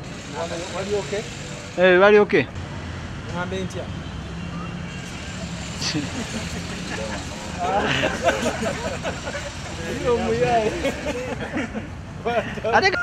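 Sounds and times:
people talking: 0:05.8 - 0:11.6.

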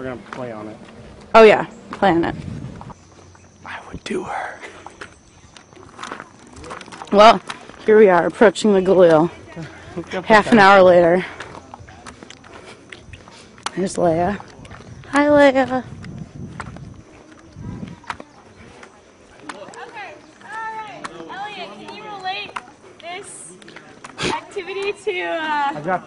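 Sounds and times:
footsteps on pavement: 0:00.0 - 0:03.6, 0:04.6 - 0:26.0.

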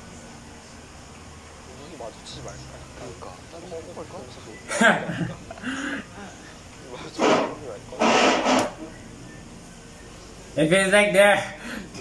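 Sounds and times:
man laughing breathily: 0:04.7 - 0:06.2.

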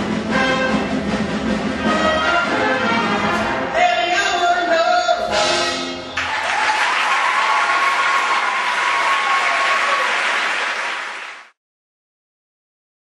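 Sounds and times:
audience applauding: 0:06.2 - 0:11.6.

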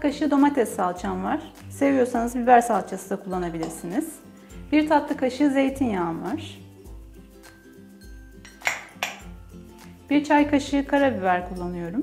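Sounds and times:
soft background music: 0:00.0 - 0:12.0
kitchenware clinking against bowl: 0:03.3 - 0:04.1, 0:08.4 - 0:09.4.

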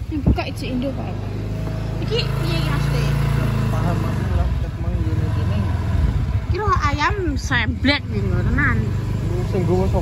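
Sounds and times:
vehicle engine rumbling: 0:00.0 - 0:10.0.

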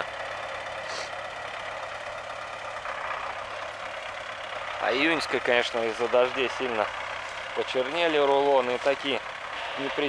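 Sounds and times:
tractor diesel engine running: 0:00.0 - 0:10.0.

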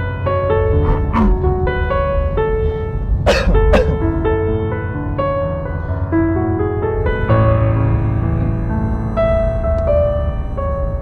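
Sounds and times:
slow piano music: 0:00.0 - 0:11.0
person coughing: 0:03.2 - 0:04.0.

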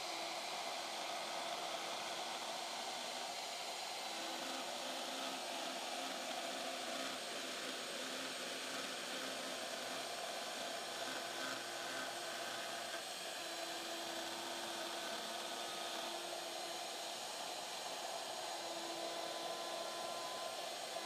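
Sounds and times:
router whirring cutting wood: 0:00.0 - 0:21.0.

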